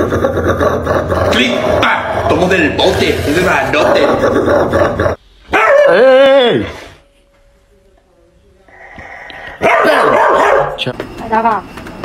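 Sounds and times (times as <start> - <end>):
dog snarling: 0.0 - 5.2.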